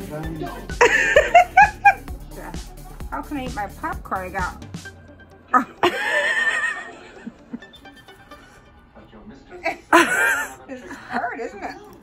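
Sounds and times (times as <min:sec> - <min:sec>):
woman laughing: 0:00.8 - 0:02.0, 0:05.5 - 0:07.7, 0:09.6 - 0:11.8.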